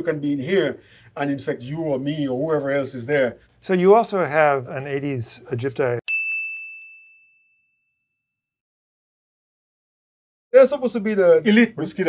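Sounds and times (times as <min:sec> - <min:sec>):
bell-like ding: 0:06.1 - 0:08.4.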